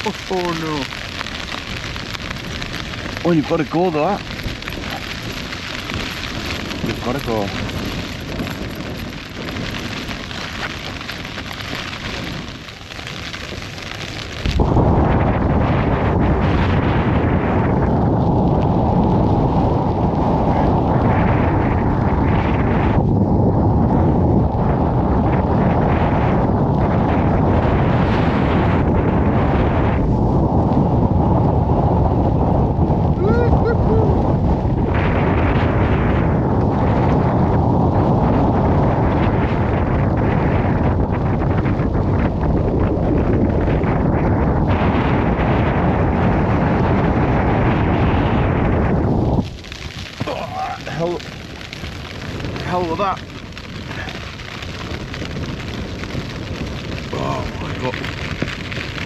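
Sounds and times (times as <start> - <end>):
rain pattering on a tent: 0.0 - 59.0
storm wind blasting microphone: 0.0 - 59.0.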